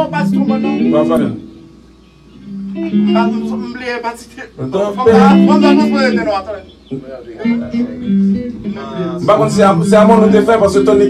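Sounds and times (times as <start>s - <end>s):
guitar playing held notes: 0.0s - 4.2s, 4.8s - 6.6s, 7.3s - 11.0s
man's voice: 9.0s - 11.0s.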